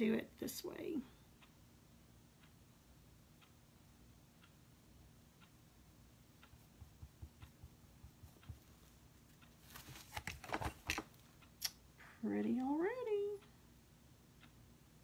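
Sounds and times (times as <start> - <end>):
faint ticking: 1.2 - 9.7.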